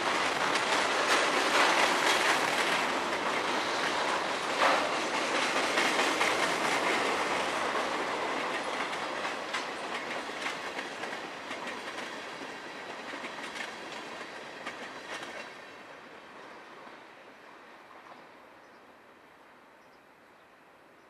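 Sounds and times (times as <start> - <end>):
wheels clicking over rail joints: 0.0 - 15.6
freight train cars rolling past: 0.0 - 19.6.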